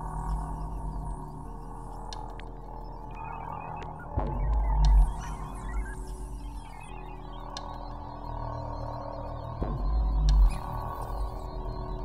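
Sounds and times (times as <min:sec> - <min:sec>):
ambient trance electronic music: 0:00.0 - 0:12.0.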